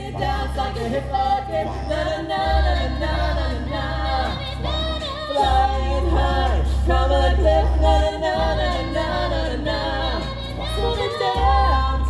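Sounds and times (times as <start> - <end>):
choir singing a cappella: 0.0 - 12.0.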